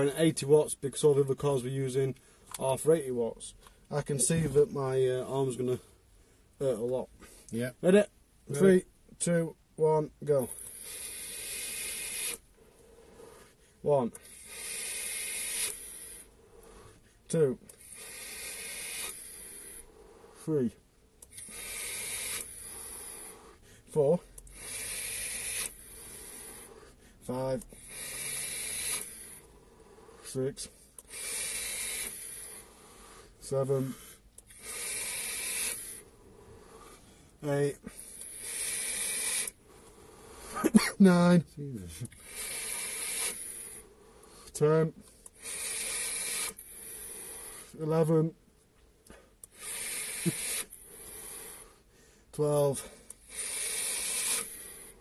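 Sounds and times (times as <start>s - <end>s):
airy vape hiss: 10.3s - 17.0s, 17.6s - 20.6s, 21.2s - 48.2s, 49.1s - 51.8s, 52.4s - 55.0s
vape click: 28.6s - 29.1s.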